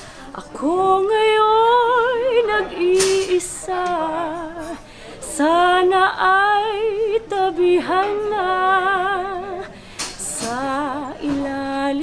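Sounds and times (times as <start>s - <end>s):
quick breath: 0.0s - 0.3s, 4.8s - 5.2s, 9.7s - 10.2s
woman singing operatic soprano: 0.4s - 12.0s.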